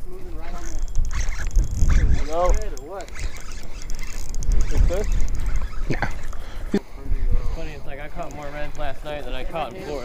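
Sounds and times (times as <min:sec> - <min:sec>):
wind gusting on microphone: 0:00.0 - 0:10.0.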